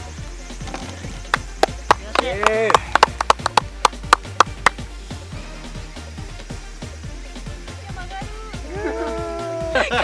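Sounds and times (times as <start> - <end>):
faint background music: 0.0 - 10.0.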